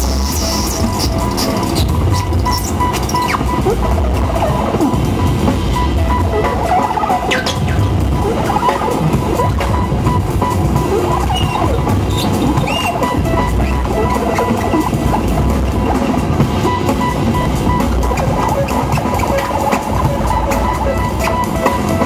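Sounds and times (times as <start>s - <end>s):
drum kit: 0.0s - 22.0s
electronic synthesizer music: 0.0s - 22.0s
repeating high beep: 0.8s - 22.0s.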